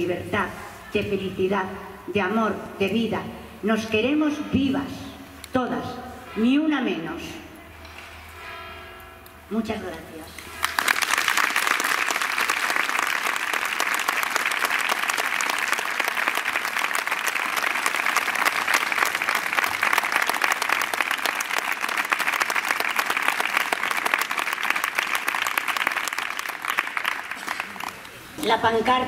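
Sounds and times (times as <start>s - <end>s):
crowd applauding: 10.5s - 28.2s.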